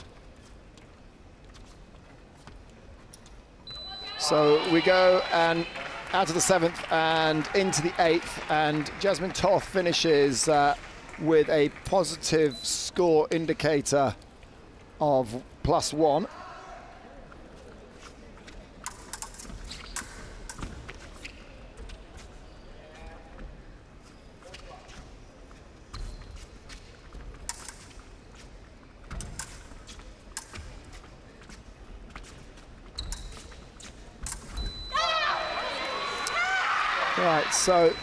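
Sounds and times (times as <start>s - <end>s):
low hall hum: 0.0s - 38.0s
fencers' feet and blades clicking: 18.0s - 22.3s, 26.0s - 34.8s.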